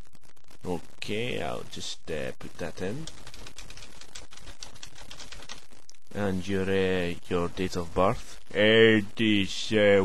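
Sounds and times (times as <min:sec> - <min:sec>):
typing on keyboard: 0:03.0 - 0:05.6.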